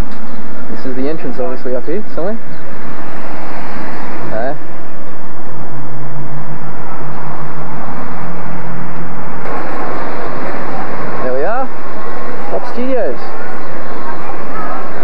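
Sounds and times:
steady low drone: 0:00.0 - 0:15.0
traffic noise: 0:02.4 - 0:15.0.

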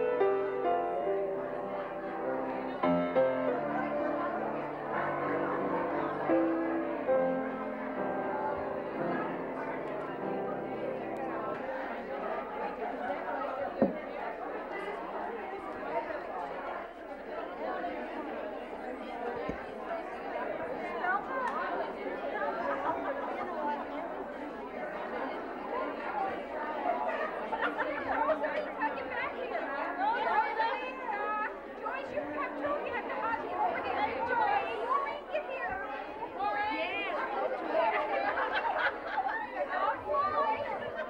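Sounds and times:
women chatting: 0:03.5 - 0:41.0.

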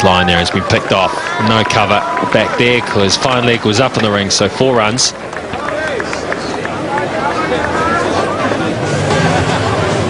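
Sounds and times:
hubbub of spectators' voices: 0:00.0 - 0:10.0.

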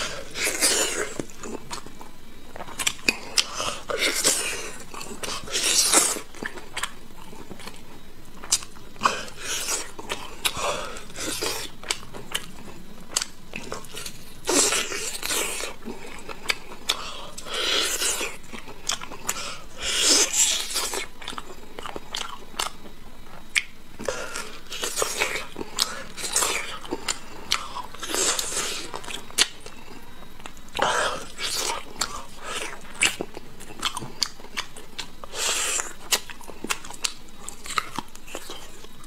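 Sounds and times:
chewing with small clicks: 0:00.0 - 0:19.5, 0:20.1 - 0:39.0.

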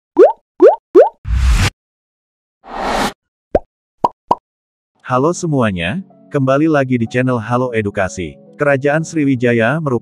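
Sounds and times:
rising bloop pops: 0:00.2 - 0:01.2.

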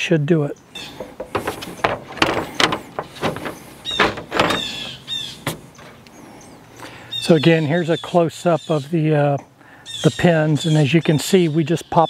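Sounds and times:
panel knocking and clicking on grille: 0:01.0 - 0:05.9.

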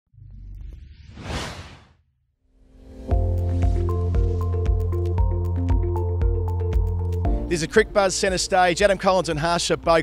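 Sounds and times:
whoosh sound effect: 0:01.0 - 0:02.0.

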